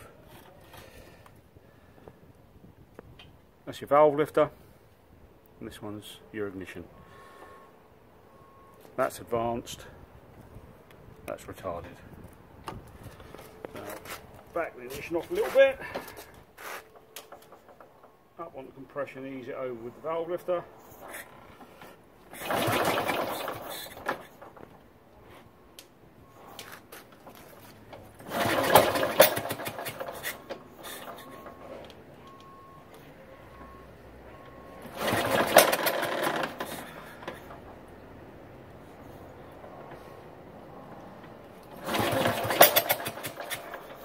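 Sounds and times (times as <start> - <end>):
short scrape: 16.6 - 16.9
motorcycle engine kick-start clatter: 16.9 - 18.2, 21.0 - 24.8, 26.5 - 31.9, 34.7 - 37.6, 41.6 - 44.0.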